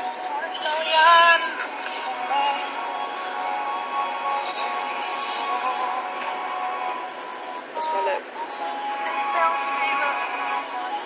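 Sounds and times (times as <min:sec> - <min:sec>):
song through phone speaker: 0:00.0 - 0:11.0.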